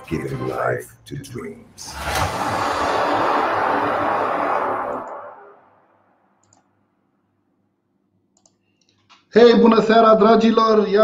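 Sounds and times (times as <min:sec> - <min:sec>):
rushing swoosh effect: 0:01.9 - 0:06.0
faint clicks: 0:08.3 - 0:09.3.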